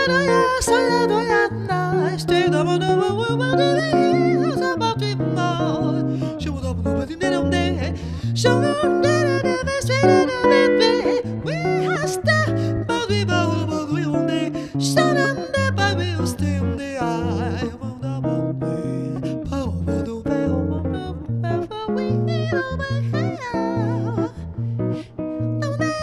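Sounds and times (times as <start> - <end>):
electric jazz guitar: 0.0 - 26.0
woman singing: 0.0 - 26.0.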